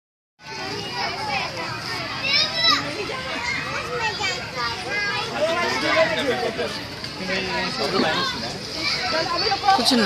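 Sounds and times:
children shouting at play: 0.4s - 10.0s.

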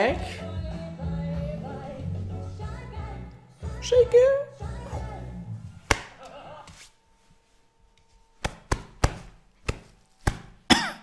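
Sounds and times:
person singing: 0.0s - 5.4s.

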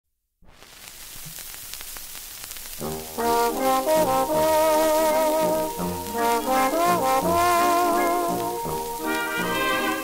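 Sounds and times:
record surface hiss and crackle: 0.4s - 10.0s
dance band with brass: 2.8s - 10.0s.

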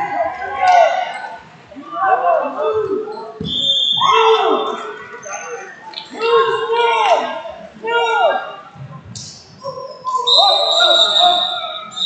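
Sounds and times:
referee's whistle blast: 3.4s - 4.9s, 10.2s - 12.0s.

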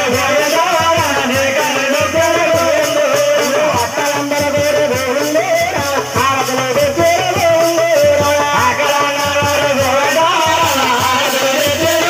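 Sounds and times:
amplified folk singing: 0.0s - 12.0s
percussion beat: 0.0s - 12.0s
rattling shaker: 0.0s - 12.0s.

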